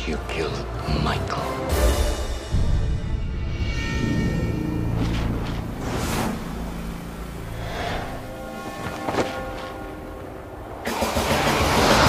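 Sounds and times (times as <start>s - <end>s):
low held drone: 2.6s - 12.0s.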